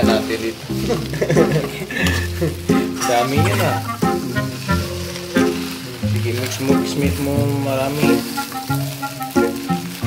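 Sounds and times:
food sizzling: 0.0 - 10.0
song with singing and bass: 0.9 - 8.5.

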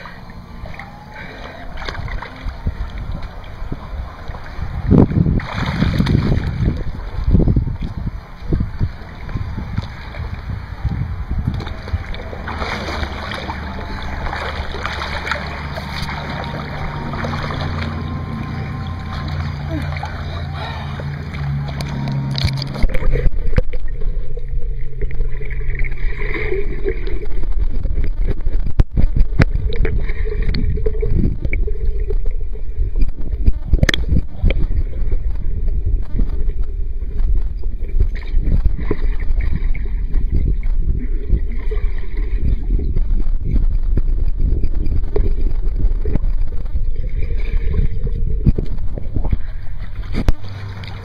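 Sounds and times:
steady low hum: 0.0 - 51.0
water churning underwater: 0.0 - 51.0.

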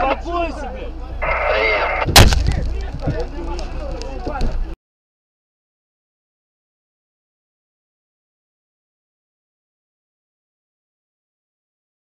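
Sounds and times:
sharp loud bang: 2.0 - 2.8.

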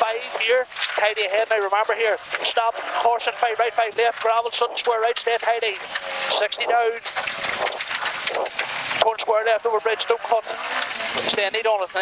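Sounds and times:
stones rattling on car underbody: 0.0 - 9.2, 10.2 - 12.0
car engine and tyre noise: 0.2 - 12.0.

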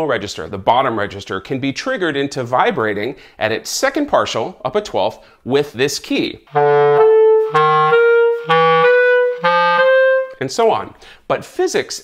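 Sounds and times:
clarinet alternating two notes: 6.5 - 10.4.

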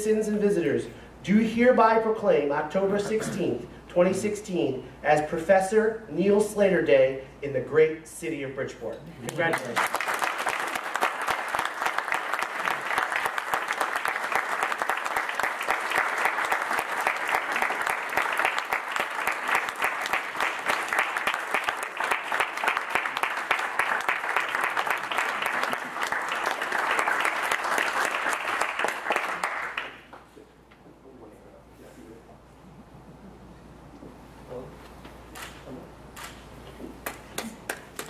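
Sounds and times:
audience applauding: 9.3 - 30.2.

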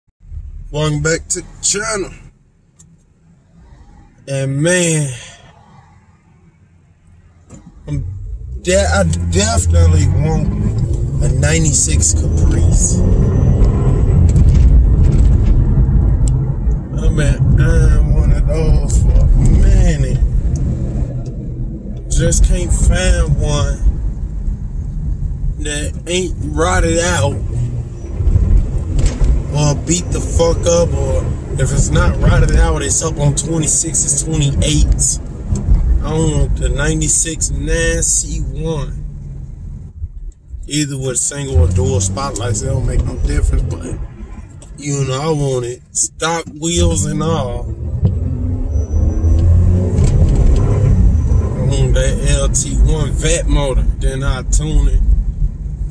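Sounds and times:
car engine and road rumble: 0.2 - 55.9
man speaking: 0.7 - 2.3, 4.3 - 5.4, 7.8 - 13.1, 17.0 - 20.2, 22.1 - 23.8, 25.6 - 27.5, 29.5 - 35.2, 36.0 - 38.9, 40.7 - 44.0, 44.8 - 47.7, 51.6 - 55.0.

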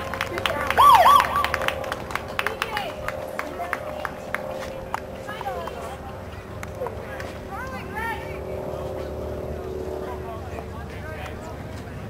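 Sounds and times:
low hum and rumble: 0.0 - 12.0.

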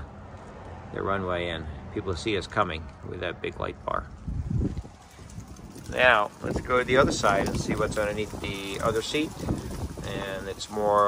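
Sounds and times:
man speaking: 1.0 - 4.1, 5.9 - 9.4, 10.0 - 11.0
handling rumble on microphone: 2.5 - 11.0.

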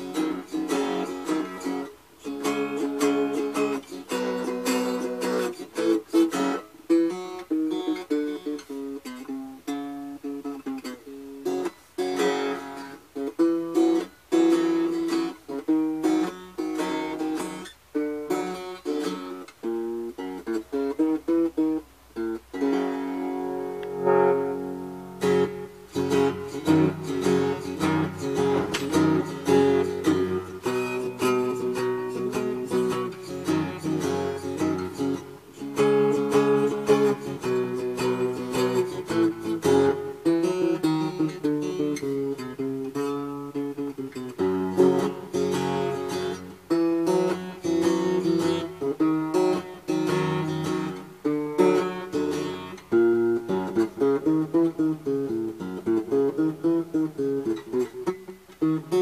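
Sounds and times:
fingerpicked guitar: 0.0 - 59.0.

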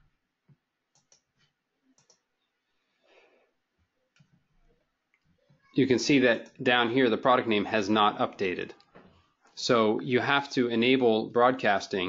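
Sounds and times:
computer mouse clicks: 0.9 - 2.3.

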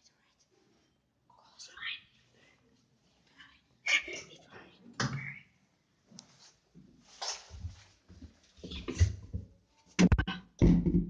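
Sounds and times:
person whispering: 0.0 - 0.5, 1.3 - 2.6, 3.3 - 5.6.

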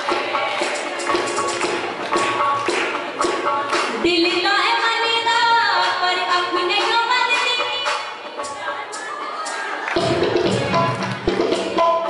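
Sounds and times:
hand drum tapping rhythm: 0.0 - 5.0, 5.8 - 12.0.

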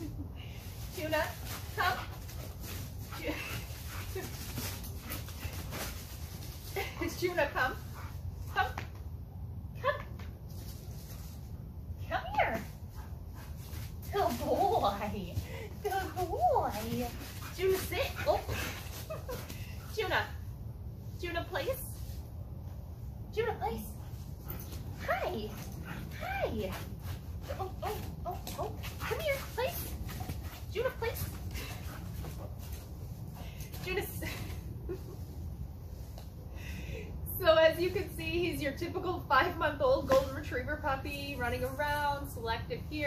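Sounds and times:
steady low rumble: 0.0 - 40.0.

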